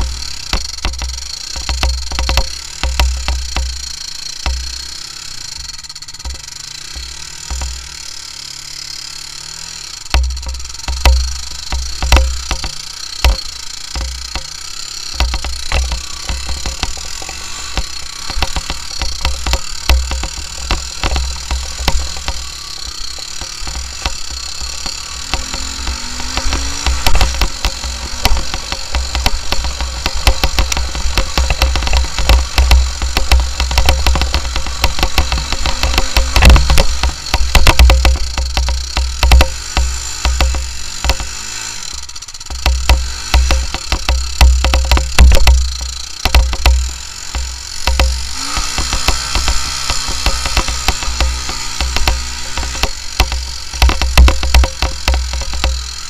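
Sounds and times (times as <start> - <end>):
knocks and rattles: 0.0 - 8.1, 9.9 - 56.0
quad engine revving: 0.0 - 56.0.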